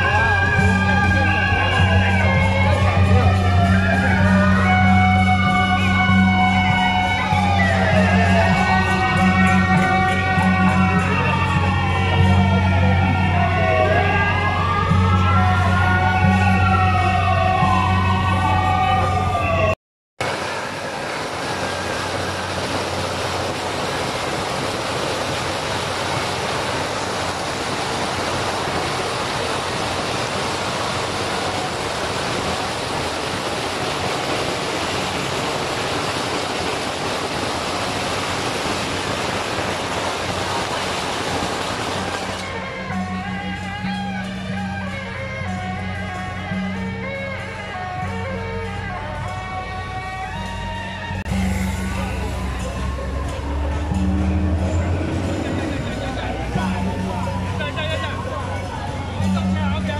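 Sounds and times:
firecrackers crackling: 20.2 - 42.6.

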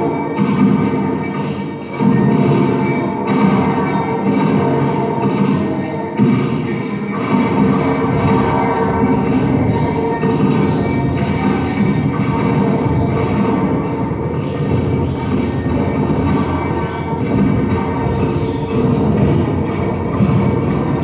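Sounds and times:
industrial noise music drone: 0.0 - 21.0.

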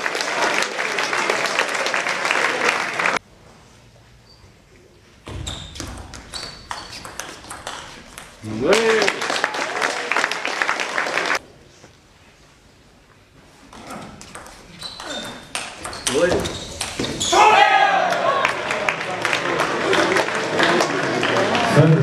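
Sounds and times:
spectators clapping: 0.0 - 3.2, 7.6 - 11.4, 17.8 - 22.0
table tennis ball pinging: 5.8 - 8.4, 14.2 - 17.2
crowd shouting and cheering: 17.2 - 22.0.

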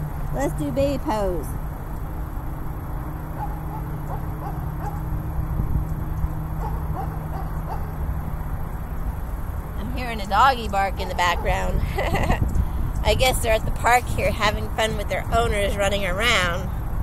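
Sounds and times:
outdoor background noise: 0.0 - 17.0.

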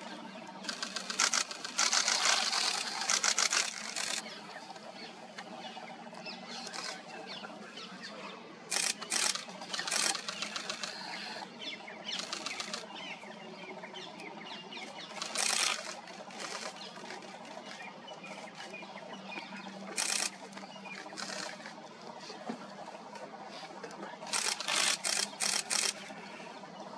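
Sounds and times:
small birds chirping: 0.0 - 22.5, 23.6 - 26.6
low steady hum: 0.0 - 26.9.

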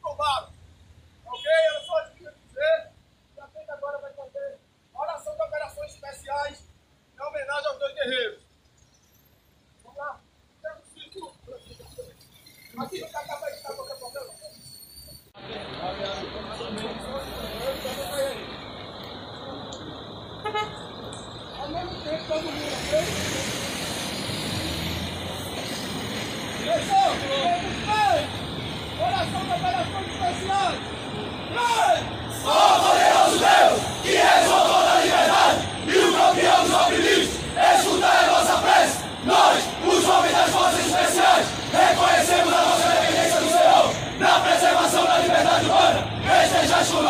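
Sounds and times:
street traffic noise: 0.0 - 47.0
short car horn toot: 1.3 - 2.1, 20.4 - 20.8
voices: 9.8 - 14.7, 15.4 - 24.0, 26.6 - 47.0
men shouting a chant: 31.5 - 47.0.

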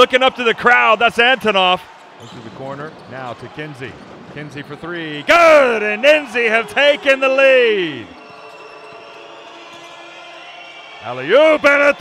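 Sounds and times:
crowd noise in arena: 0.0 - 12.0.

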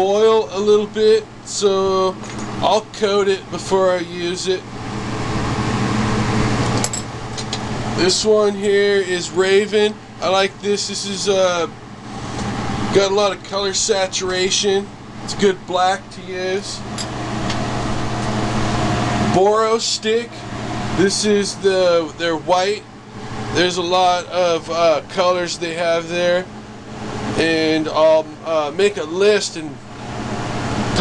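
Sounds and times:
workshop equipment rushing hum: 0.0 - 31.0.

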